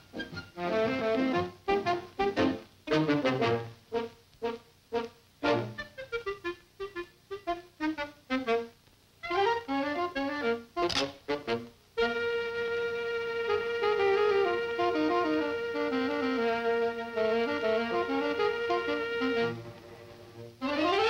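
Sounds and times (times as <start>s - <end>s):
orchestral cartoon music: 0.0s - 8.6s, 9.3s - 21.0s
brass and woodwind notes: 0.0s - 21.0s
held orchestral chord: 11.4s - 19.7s.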